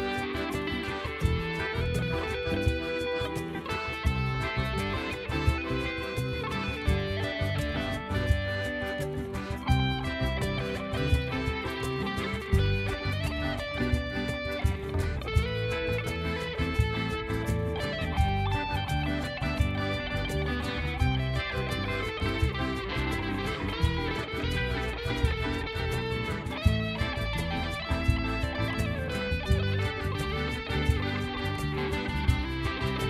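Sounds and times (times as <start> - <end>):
instrumental song with steady beat: 0.0 - 33.0.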